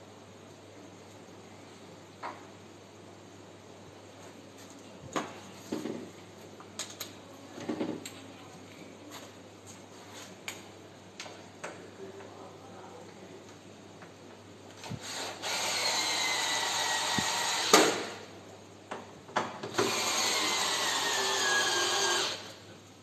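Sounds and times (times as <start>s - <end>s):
cordless drill motor whine: 14.8s - 18.2s, 19.7s - 22.6s.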